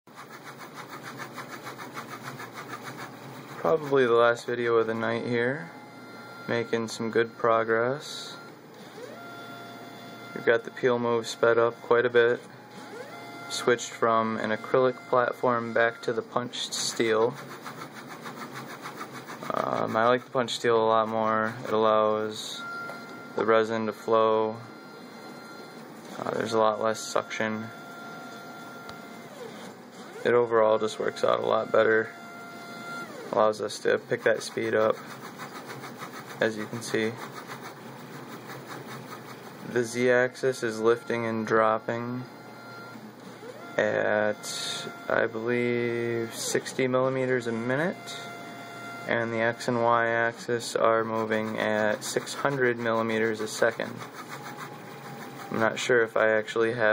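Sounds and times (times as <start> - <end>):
stepper motors pulsing: 0.1 - 4.6, 12.7 - 20.4, 27.8 - 56.2.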